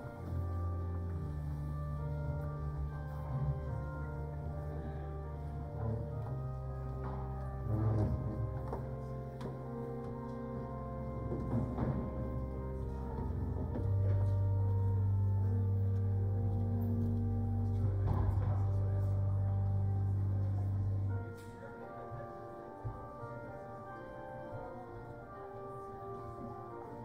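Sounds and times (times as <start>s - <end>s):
deep organ pedal note: 0.0s - 26.9s
church organ chords: 0.0s - 27.0s.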